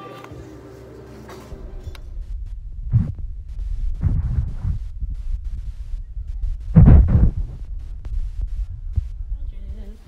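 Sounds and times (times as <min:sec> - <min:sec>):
rumble and thumping on microphone: 0:01.5 - 0:10.0.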